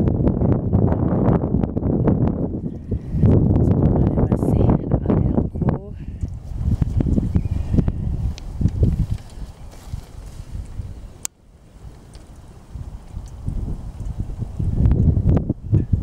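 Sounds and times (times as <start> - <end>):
strong wind buffeting microphone: 0.0 - 16.0.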